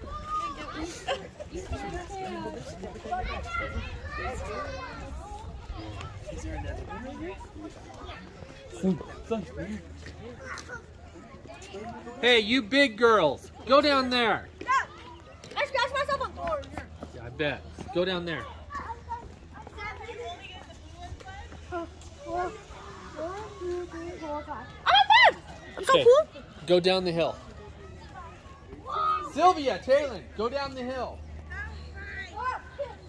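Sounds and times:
children calling and chattering: 0.0s - 33.0s.

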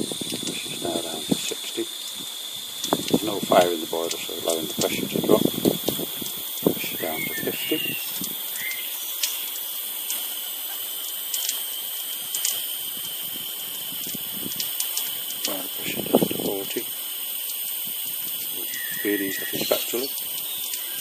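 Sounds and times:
steam injector hissing: 0.0s - 21.0s
faint clicks: 9.1s - 11.7s, 12.3s - 12.7s, 14.0s - 15.6s, 20.1s - 20.9s.

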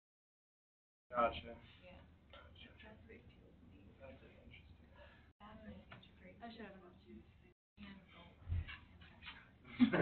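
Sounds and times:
people talking: 5.4s - 9.3s.

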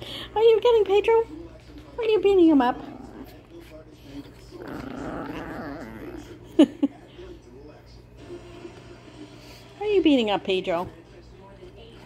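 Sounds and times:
small dog growling: 2.4s - 6.8s.

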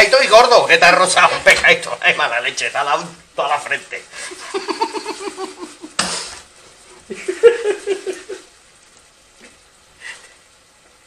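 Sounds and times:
people laughing hard: 4.3s - 6.0s, 7.1s - 8.5s.

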